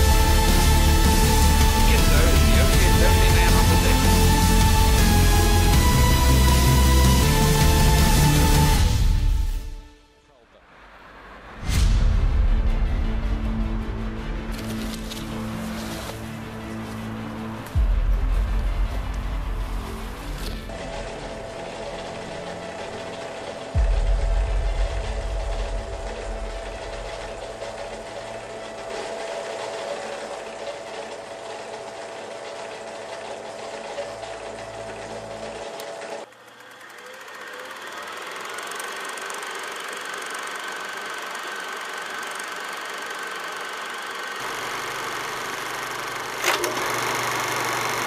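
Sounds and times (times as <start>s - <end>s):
loud low rumble: 23.8s - 28.8s
small machine clattering: 27.2s - 48.0s.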